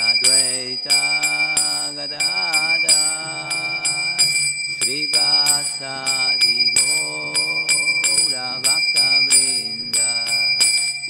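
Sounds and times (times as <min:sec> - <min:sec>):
man singing prayers: 0:00.0 - 0:10.9
bell-like metal percussion: 0:00.0 - 0:11.0.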